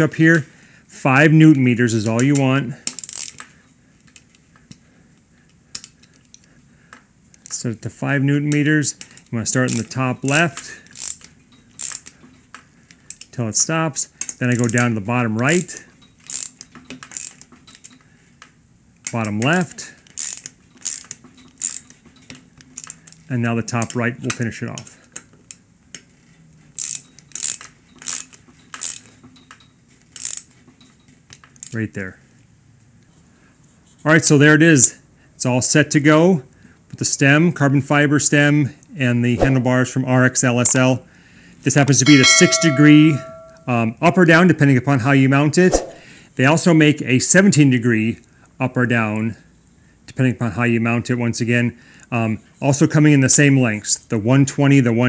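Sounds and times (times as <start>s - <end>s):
torque wrench ratchet clicks: 16.3s - 17.4s.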